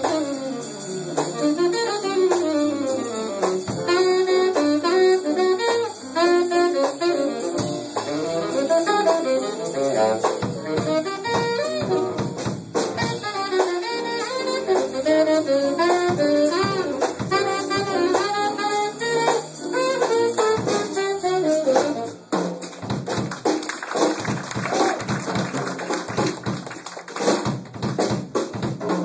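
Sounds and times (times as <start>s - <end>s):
saxophone melody: 0.0s - 22.4s
drums: 0.0s - 29.0s.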